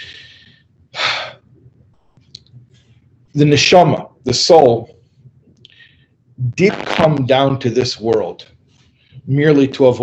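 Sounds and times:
man speaking: 0.0 - 1.4, 3.3 - 5.0, 5.7 - 8.4, 9.3 - 10.0.

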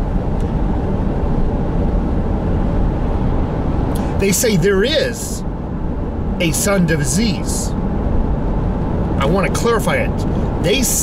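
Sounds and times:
car interior road noise: 0.0 - 11.0.

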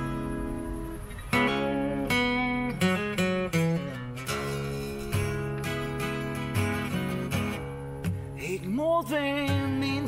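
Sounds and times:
acoustic guitar strumming blues: 0.0 - 10.0
man singing: 8.4 - 10.0.

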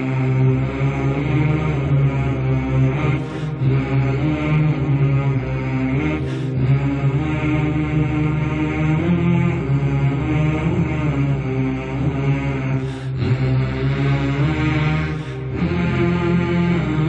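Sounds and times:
person chanting low notes: 0.0 - 17.0
breath: 3.2 - 3.6, 6.2 - 6.6, 12.8 - 13.2, 15.2 - 15.5.

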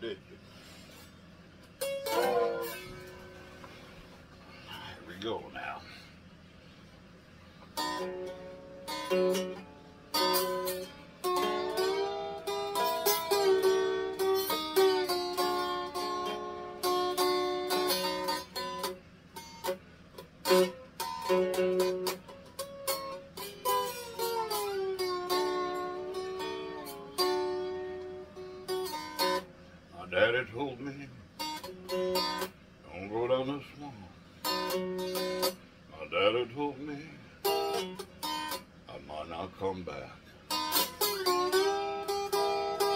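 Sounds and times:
ukulele strumming: 1.7 - 3.6, 7.8 - 29.5, 31.4 - 32.6, 34.4 - 35.6, 37.4 - 38.7, 40.4 - 42.9.

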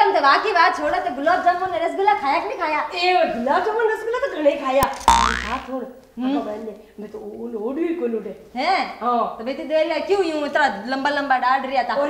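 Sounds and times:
comedy hit with falling pitch: 4.8 - 5.7.

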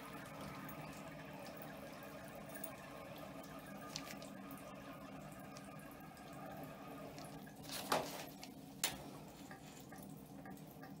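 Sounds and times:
tap water trickling into tub: 0.0 - 11.0.

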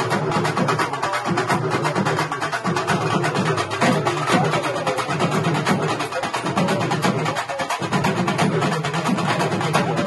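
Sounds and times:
drum ensemble fast beat: 0.0 - 10.0.

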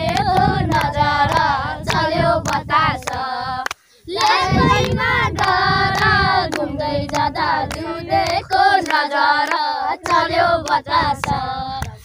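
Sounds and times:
children singing: 0.0 - 11.7
hand claps: 0.0 - 12.0.

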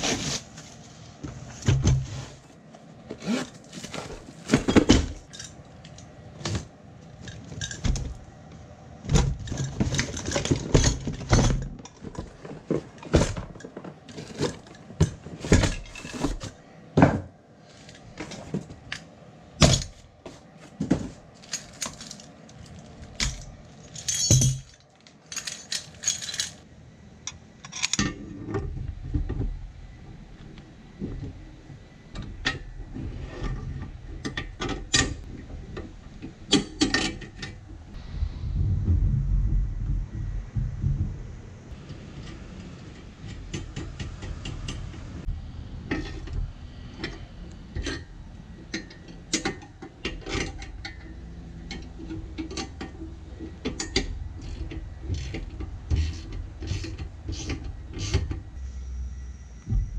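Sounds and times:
metal parts clinking: 4.5 - 6.0, 21.4 - 26.7
steady low rumble: 37.4 - 48.6, 51.0 - 59.9.

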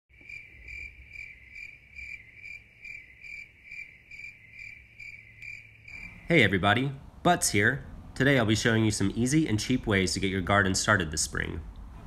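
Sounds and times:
cricket chirping: 0.1 - 6.5
faint low hum: 0.2 - 12.0.

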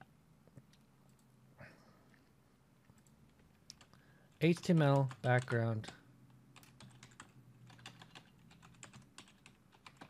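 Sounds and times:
typing on computer keyboard: 6.6 - 10.0.

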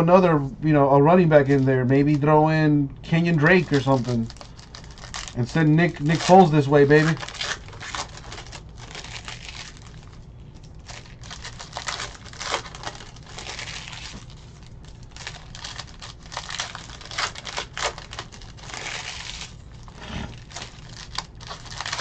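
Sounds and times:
foil wrappers crinkling and tearing: 1.1 - 2.3, 3.1 - 22.0.

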